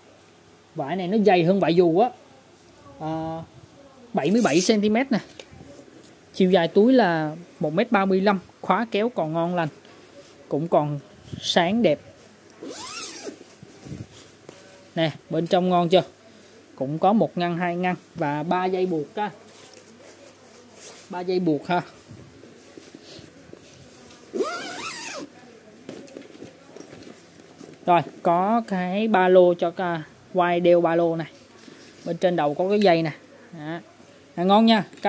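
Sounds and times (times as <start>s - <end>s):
zipper being pulled open: 12.6s - 13.4s, 24.3s - 25.3s.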